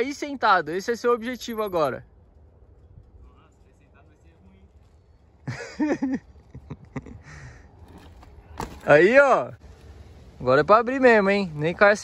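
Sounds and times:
faint outdoor background: 0.0s - 12.0s
bike landing knock on dirt: 7.9s - 9.0s.

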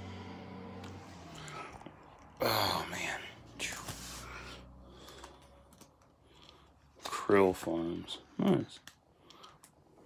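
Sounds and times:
book pages rustling: 3.6s - 4.4s.

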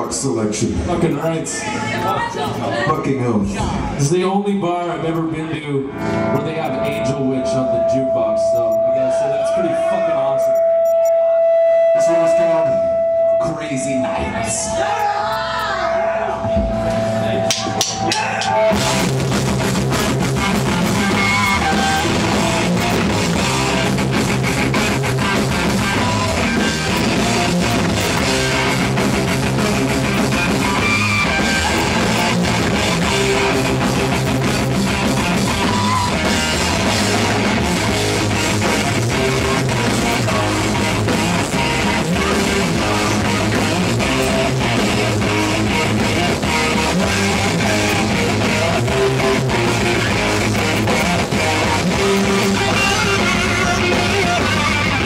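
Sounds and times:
heavy metal band playing: 3.5s - 55.0s
sharp clicks: 19.9s - 23.4s, 25.6s - 35.8s, 49.7s - 54.0s.

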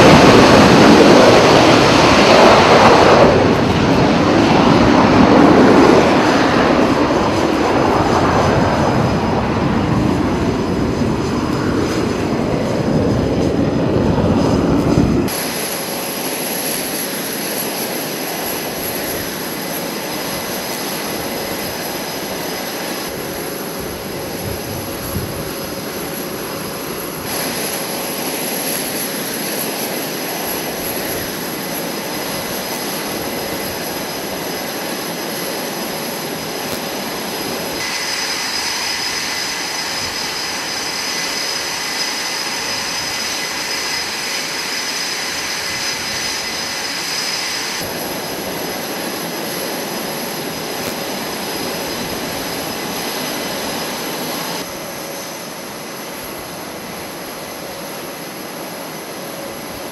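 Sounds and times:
high-pitched jet whine: 0.0s - 59.9s
loud jet engine roar: 0.0s - 59.9s.

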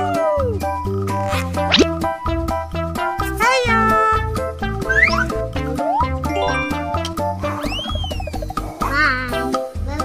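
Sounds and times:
upbeat children's music: 0.1s - 10.0s
sliding-pitch sound effects: 6.3s - 7.8s.

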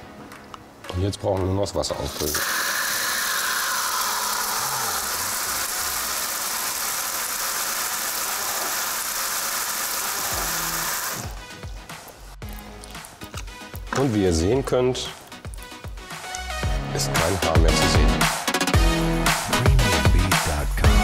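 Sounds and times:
tap water running onto shower tray: 2.0s - 11.4s.

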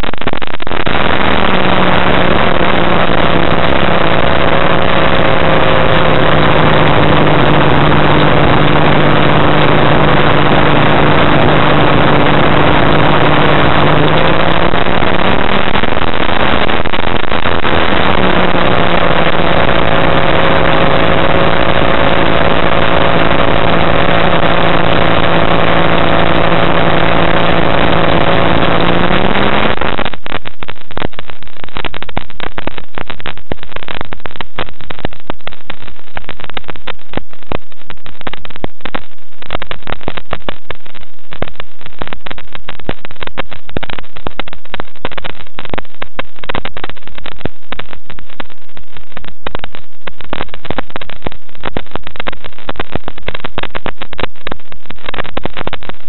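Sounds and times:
aircraft engine and propeller: 1.2s - 15.8s.

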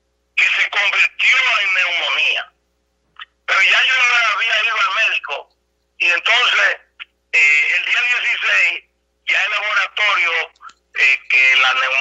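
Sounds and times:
man speaking over telephone: 0.4s - 2.6s, 3.5s - 12.0s.

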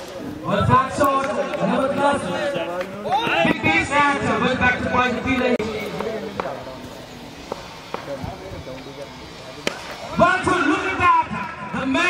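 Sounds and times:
men's voices: 0.0s - 12.0s
cricket bat striking ball: 9.6s - 10.0s.

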